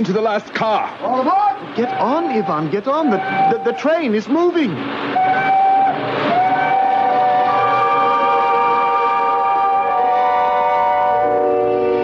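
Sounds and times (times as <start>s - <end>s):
train whistle: 1.8s - 4.0s, 5.1s - 12.0s.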